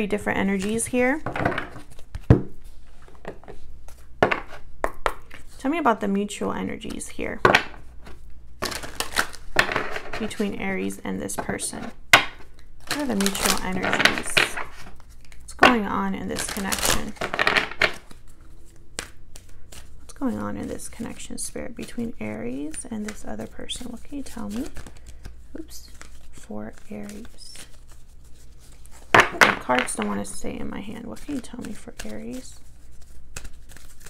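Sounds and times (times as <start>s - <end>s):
cards being shuffled: 0.0s - 5.8s, 6.7s - 34.0s
cards tapping and clicking on table: 4.2s - 5.4s, 9.6s - 10.3s, 17.2s - 18.1s.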